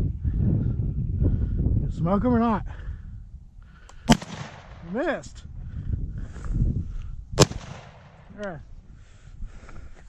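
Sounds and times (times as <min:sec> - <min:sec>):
shotgun shot with echo: 0:04.1 - 0:05.2, 0:07.4 - 0:08.4.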